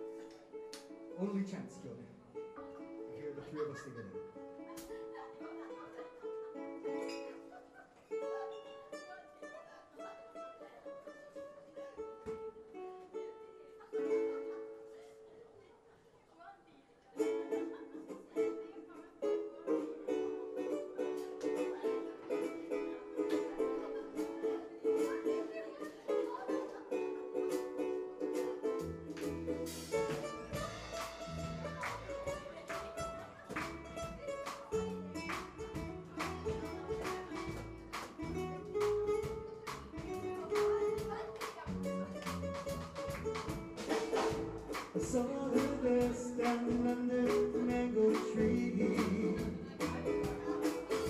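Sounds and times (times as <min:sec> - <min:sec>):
ukulele strumming: 0:00.0 - 0:15.4, 0:17.2 - 0:51.0.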